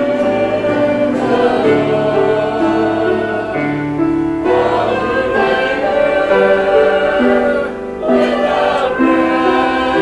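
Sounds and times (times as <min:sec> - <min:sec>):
choir singing a slow hymn: 0:00.0 - 0:10.0.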